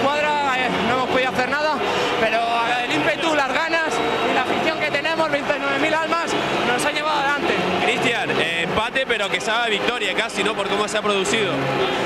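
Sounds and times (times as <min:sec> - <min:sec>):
man talking: 0:00.0 - 0:11.7.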